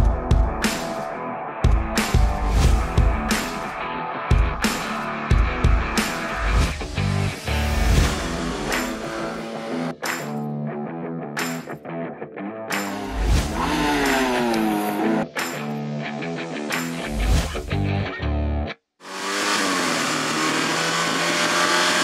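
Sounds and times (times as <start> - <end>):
rock music: 0.0 - 18.7
electric guitar: 0.0 - 18.8.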